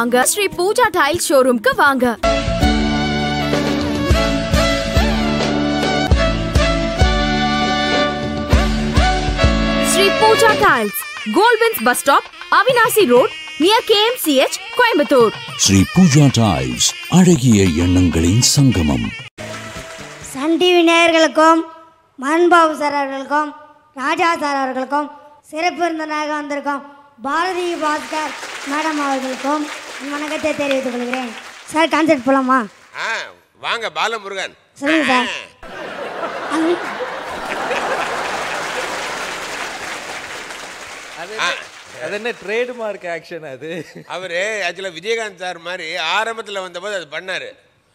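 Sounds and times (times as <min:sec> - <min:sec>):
studio audience applauding: 0:16.6 - 0:20.6, 0:27.5 - 0:33.1, 0:35.7 - 0:43.1.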